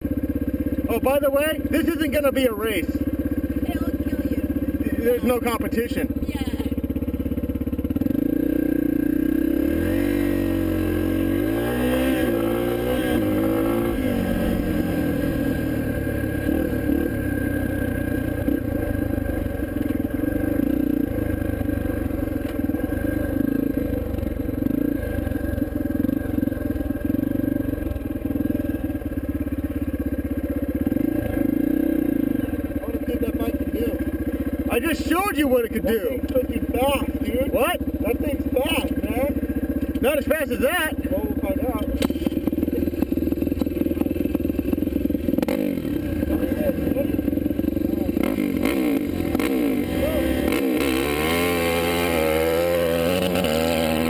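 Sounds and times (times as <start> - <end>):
dirt bike engine revving: 0.2 - 54.0.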